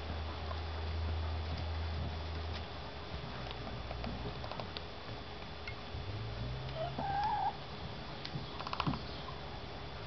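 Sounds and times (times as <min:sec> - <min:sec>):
chicken call: 0:06.8 - 0:07.6.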